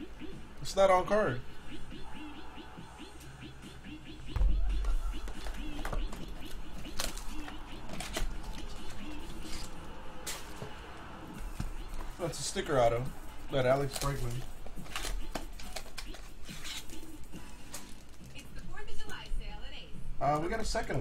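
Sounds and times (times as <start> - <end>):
faint background music: 0.0 - 21.0.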